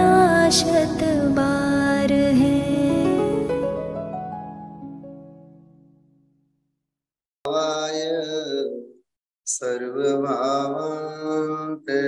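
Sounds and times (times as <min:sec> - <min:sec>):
man chanting: 0:07.5 - 0:12.0.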